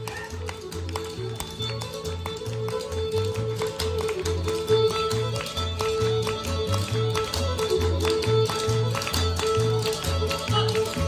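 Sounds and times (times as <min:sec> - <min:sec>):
dancers' shoes tapping on floor: 0:00.0 - 0:11.0
fiddle: 0:00.0 - 0:11.0.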